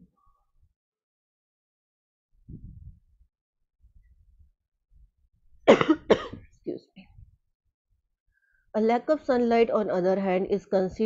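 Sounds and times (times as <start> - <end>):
woman coughing: 5.7 - 6.5.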